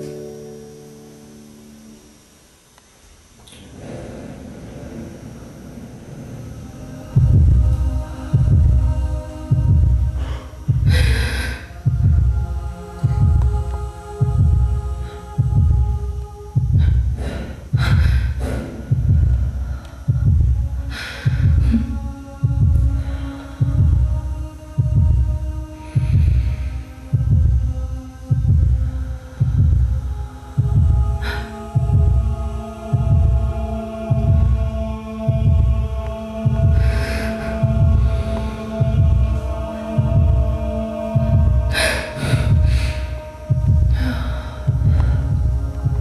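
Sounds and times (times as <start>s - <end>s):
held electronic drone: 0.0s - 46.0s
steady hum: 0.0s - 46.0s
deep bass pulse: 6.1s - 46.0s.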